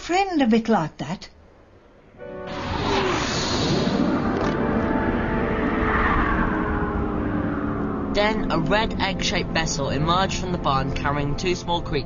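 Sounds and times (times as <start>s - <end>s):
whoosh falling in pitch: 2.2s - 8.6s
spacecraft engine rumble: 2.3s - 12.0s.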